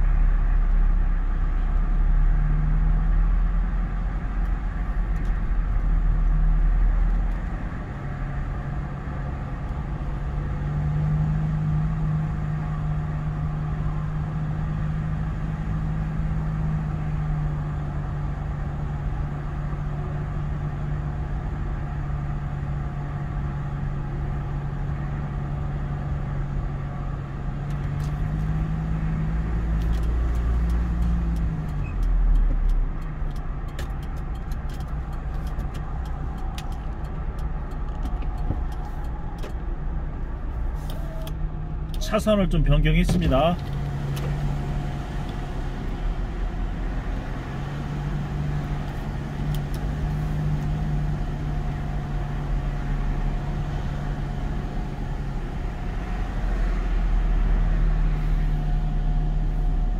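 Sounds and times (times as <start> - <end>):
car engine and road hum: 0.0 - 59.9
turn signal clicking: 27.6 - 42.1, 43.0 - 46.1, 46.7 - 51.4.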